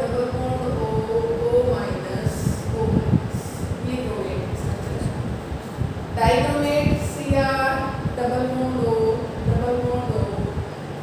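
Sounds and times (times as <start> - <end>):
woman speaking: 0.0 - 5.4, 6.1 - 10.7.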